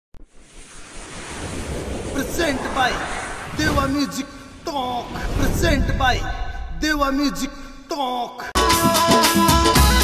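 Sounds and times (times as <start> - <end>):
whoosh with low rumble: 0.2 - 7.6.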